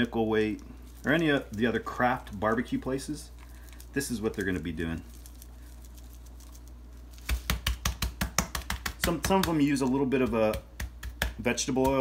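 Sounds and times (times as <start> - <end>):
low room hum: 0.0 - 12.0
sharp taps of seasoning shaker: 7.2 - 12.0.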